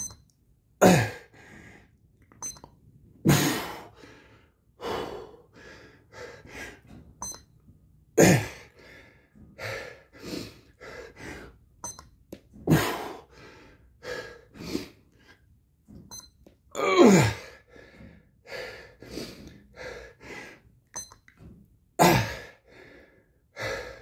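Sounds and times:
short electronic beep: 0:00.0 - 0:00.3, 0:02.4 - 0:02.7, 0:07.2 - 0:07.5, 0:11.8 - 0:12.1, 0:16.1 - 0:16.4, 0:21.0 - 0:21.2
man grunting with effort: 0:00.8 - 0:01.3, 0:08.2 - 0:08.6, 0:16.8 - 0:17.5, 0:22.0 - 0:22.5
heavy breathing: 0:00.9 - 0:02.0, 0:03.4 - 0:06.9, 0:08.3 - 0:11.6, 0:12.7 - 0:15.5, 0:17.3 - 0:20.7, 0:22.1 - 0:24.0.

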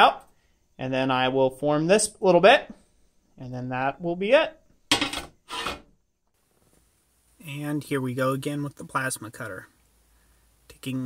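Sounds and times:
steel plate scraping on workbench: 0:04.9 - 0:05.9.

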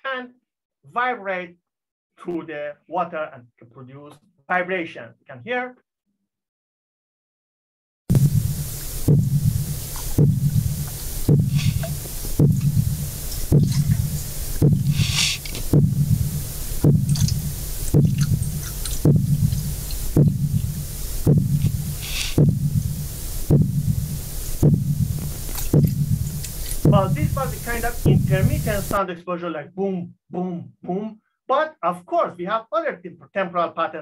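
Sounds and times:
pile-driving hammer booms: 0:08.1 - 0:28.6
steady low drone: 0:08.1 - 0:29.0.

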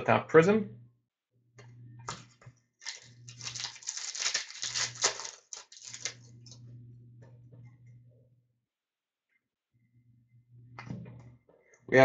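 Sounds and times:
steady low hum: 0:00.0 - 0:03.8, 0:04.6 - 0:08.6, 0:09.7 - 0:12.0.

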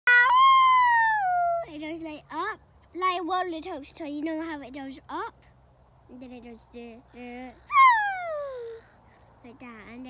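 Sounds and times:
person shouting wheee: 0:07.7 - 0:08.8.

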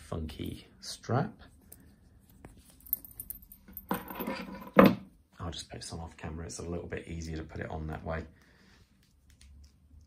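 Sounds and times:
watch strap rustling: 0:01.6 - 0:04.2.

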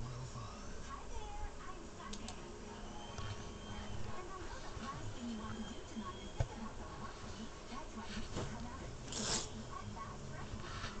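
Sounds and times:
low steady hum: 0:00.0 - 0:11.0
duvet fabric rustling: 0:03.4 - 0:09.6.

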